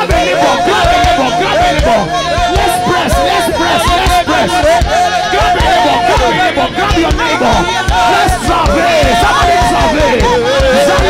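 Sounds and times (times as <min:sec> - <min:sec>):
many voices praying aloud: 0:00.0 - 0:11.0
music with steady beat: 0:00.0 - 0:11.0.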